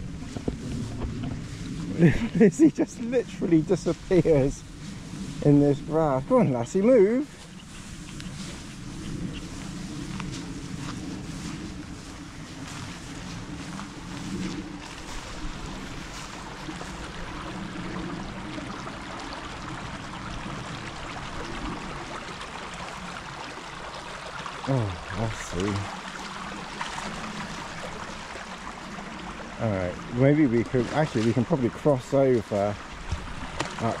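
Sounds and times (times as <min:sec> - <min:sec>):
rustling through tall grass: 0:00.0 - 0:18.7, 0:25.4 - 0:29.5
stream trickling over stones: 0:00.0 - 0:34.0.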